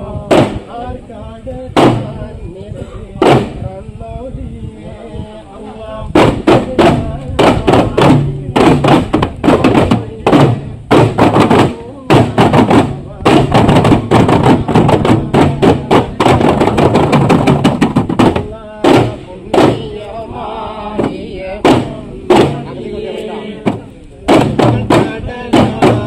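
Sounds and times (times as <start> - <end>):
voices: 0.0 - 26.0
frame drums beaten by hand: 0.2 - 0.7, 1.8 - 2.1, 3.2 - 3.6, 6.2 - 20.0, 20.9 - 22.8, 23.6 - 26.0.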